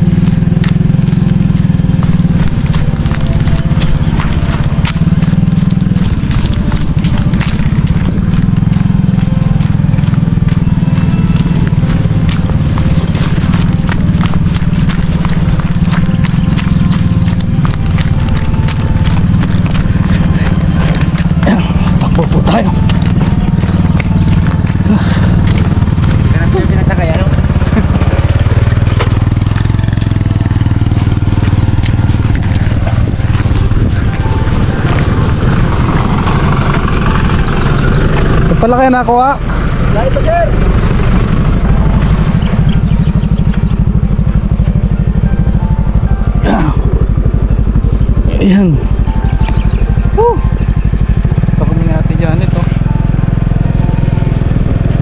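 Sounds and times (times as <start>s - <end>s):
wind buffeting microphone: 0.0s - 38.7s
motorcycle engine running: 0.0s - 55.0s.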